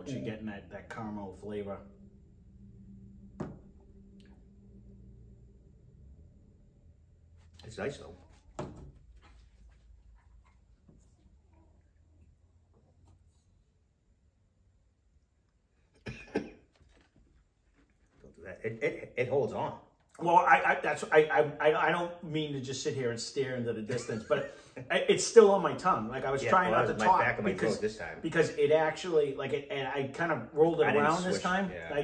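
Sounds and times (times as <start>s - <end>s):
low steady hum: 0.0s - 16.6s, 17.7s - 32.0s
man coughing: 16.0s - 16.6s.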